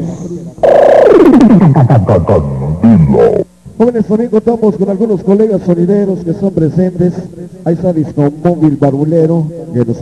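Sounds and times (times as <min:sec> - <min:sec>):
deep pitch-shifted voice effect: 0:00.0 - 0:03.5
deep wavering laugh-like syllables: 0:00.0 - 0:03.5.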